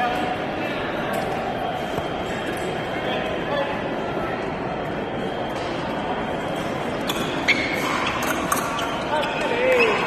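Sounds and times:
shoe squeaks: 7.1 - 10.0.

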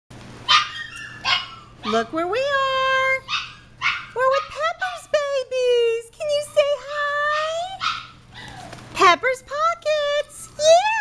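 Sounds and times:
puppy barking: 0.4 - 2.1, 3.2 - 5.4, 6.3 - 8.6.

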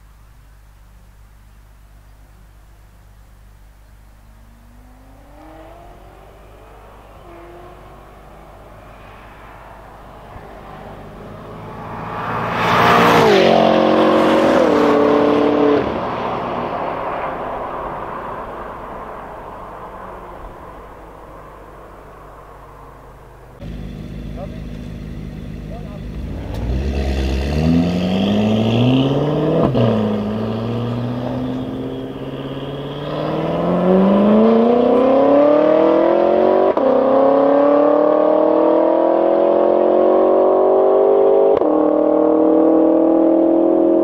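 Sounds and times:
car engines idling: 0.0 - 35.3
car engine accelerating with upshifts: 4.2 - 44.0.

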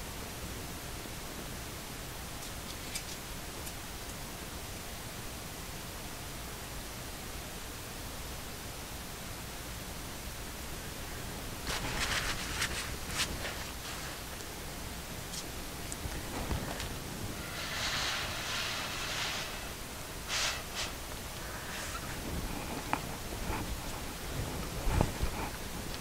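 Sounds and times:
background hiss: 0.0 - 26.0
paper towel rustling: 11.6 - 25.9.

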